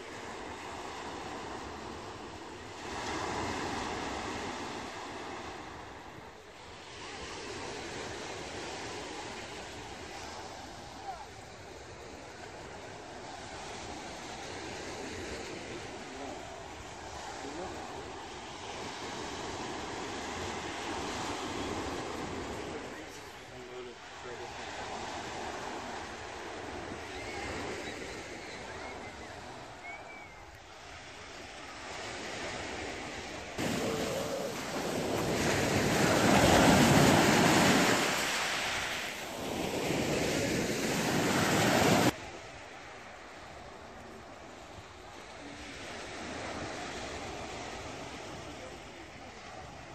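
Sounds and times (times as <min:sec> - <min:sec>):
surf washing onto beach: 0:00.0 - 0:29.8, 0:30.6 - 0:49.9
wind on microphone: 0:31.2 - 0:42.2.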